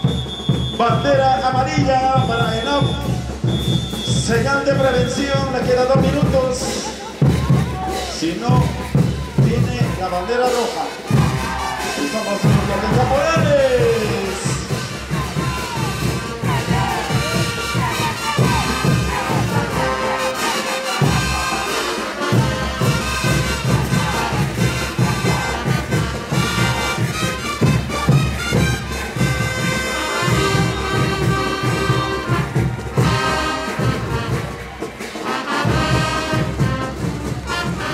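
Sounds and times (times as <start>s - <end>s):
bass drum beat: 0.0s - 37.9s
brass band playing: 0.0s - 37.9s.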